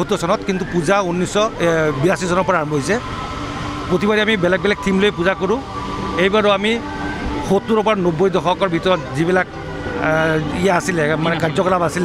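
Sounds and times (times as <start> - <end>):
man speaking into microphones: 0.0 - 3.1, 3.8 - 12.0.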